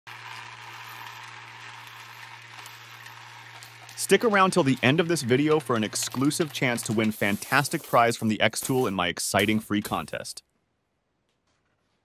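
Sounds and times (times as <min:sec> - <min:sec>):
low machine buzz: 0:00.1 - 0:07.2
coins rattling on wood: 0:00.1 - 0:10.0.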